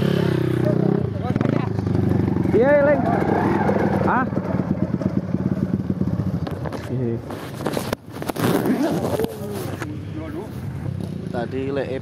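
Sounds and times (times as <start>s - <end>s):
rushing rubbing noise: 2.3s - 10.6s
men talking: 2.4s - 4.5s, 6.8s - 7.3s, 8.6s - 12.0s
dirt bike engine idling: 3.8s - 7.1s.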